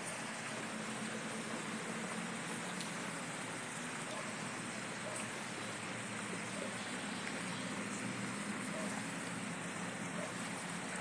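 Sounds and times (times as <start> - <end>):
rain hissing: 0.0 - 11.0.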